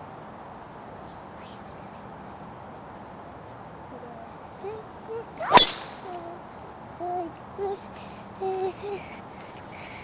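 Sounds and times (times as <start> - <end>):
golf club swish: 5.5 - 6.1
golf ball impact crack: 5.5 - 6.2.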